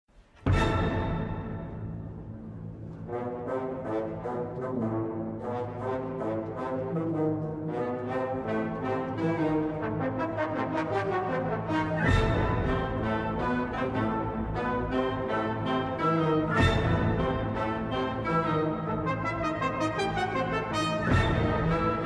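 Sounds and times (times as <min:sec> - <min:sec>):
orchestral brass melody: 0:00.4 - 0:22.0.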